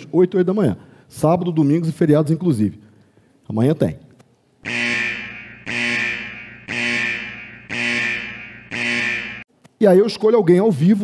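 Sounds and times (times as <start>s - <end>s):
electronic buzzer beeps: 4.7s - 9.4s.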